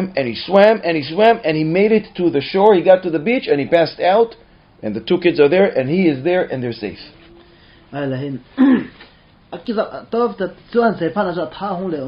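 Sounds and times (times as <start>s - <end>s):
man clearing his throat: 8.5s - 9.0s.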